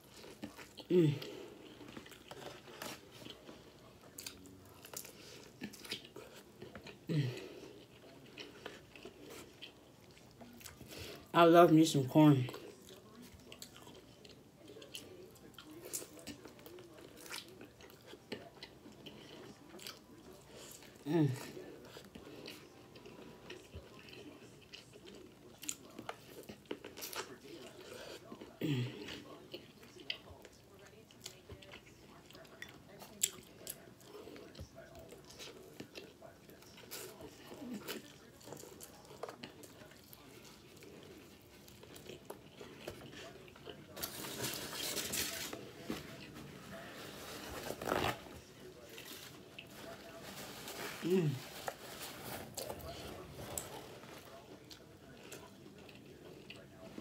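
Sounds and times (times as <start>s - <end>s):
chewing corn on the cob: 0.0s - 11.3s, 12.5s - 57.0s.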